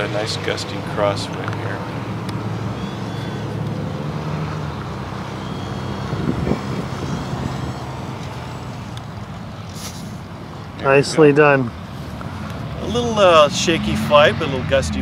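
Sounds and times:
model jet fan whine: 2.0s - 10.5s
gusty wind on microphone: 5.9s - 8.9s.

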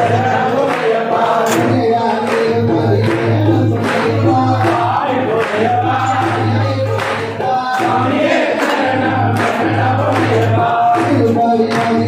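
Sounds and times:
group devotional singing: 0.0s - 12.0s.

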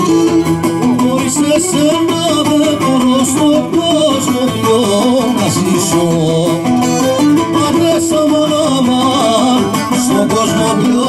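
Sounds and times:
folk band through loudspeakers: 0.0s - 11.0s.

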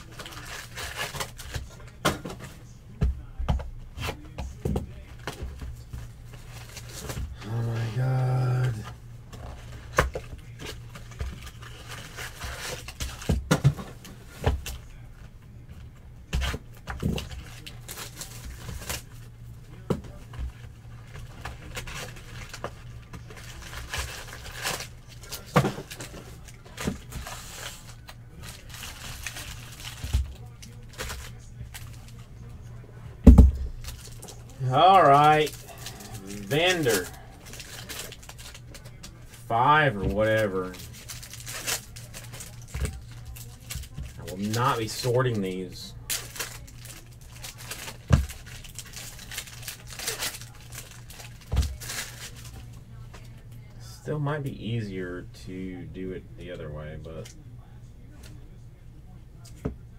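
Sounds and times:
foil packs rustling: 0.0s - 2.6s, 5.2s - 15.0s, 16.3s - 19.3s, 20.5s - 32.3s, 33.2s - 53.0s
person's voice: 7.3s - 8.9s, 34.5s - 37.4s, 39.4s - 40.8s.

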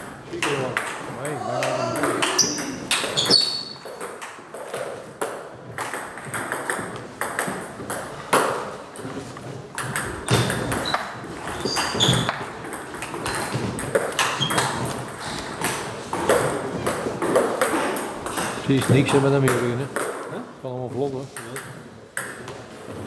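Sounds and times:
short high squeaks: 2.3s - 3.8s, 10.8s - 12.3s.

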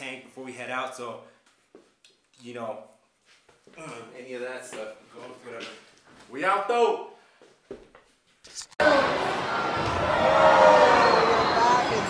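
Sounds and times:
crowd shouting in arena: 8.8s - 12.0s.

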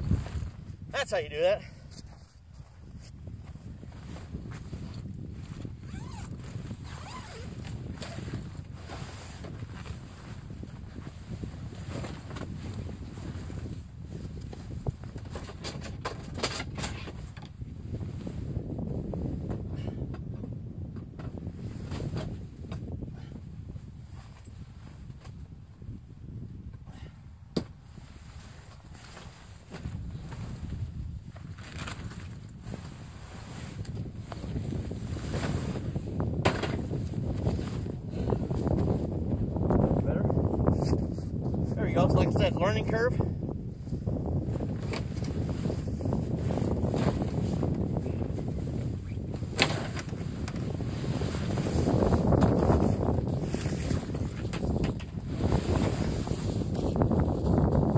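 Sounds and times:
wind buffeting microphone: 0.0s - 57.9s
nylon fabric rustling: 2.0s - 13.7s, 28.0s - 39.1s, 44.4s - 57.8s.

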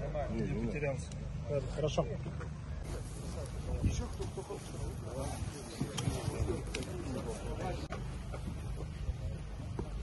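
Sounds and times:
low wind rumble: 2.6s - 10.0s.

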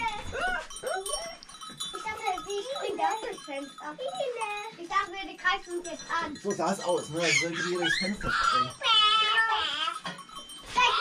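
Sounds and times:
cow bells ringing: 0.0s - 11.0s.

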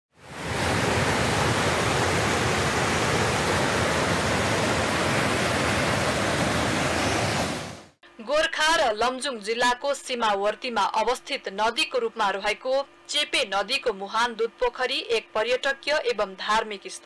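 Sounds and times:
stream rushing over boulders: 0.2s - 7.9s.

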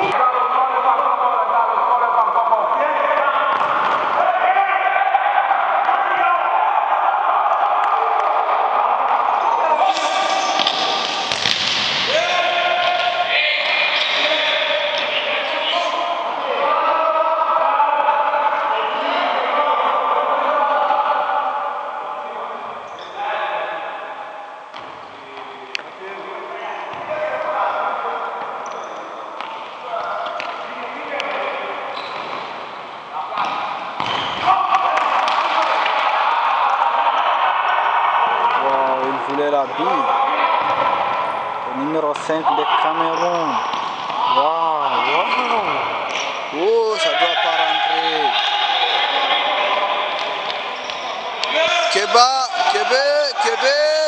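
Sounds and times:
people shouting in echoing hall: 0.0s - 54.0s
crowd shouting oh: 3.1s - 11.3s, 34.4s - 39.1s, 42.4s - 54.0s
ball bouncing on hard floor: 10.6s - 12.0s, 33.4s - 34.5s.

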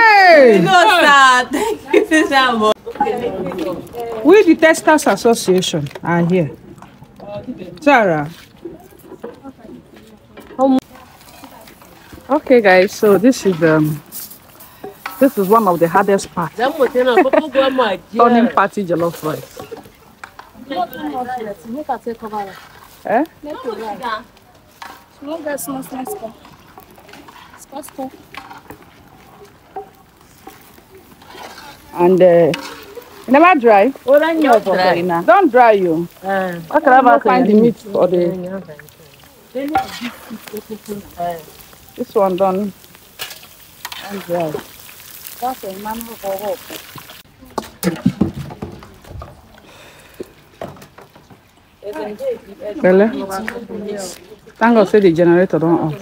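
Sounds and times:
paddle scraping rice in pot: 22.2s - 23.2s, 24.7s - 36.2s, 39.7s - 41.0s.

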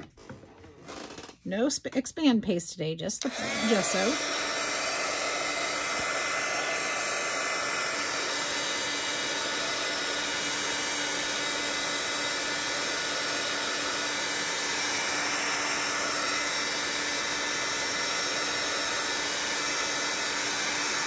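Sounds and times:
heat gun blowing with motor hum: 3.2s - 21.0s.

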